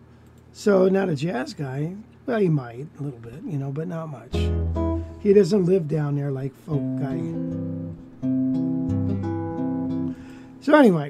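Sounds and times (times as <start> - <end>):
electric guitar ringing chords: 4.3 - 5.4, 6.6 - 10.6.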